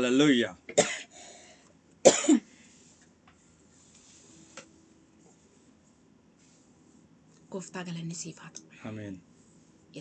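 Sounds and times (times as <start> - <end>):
person coughing: 0.8 - 1.2, 2.0 - 2.6.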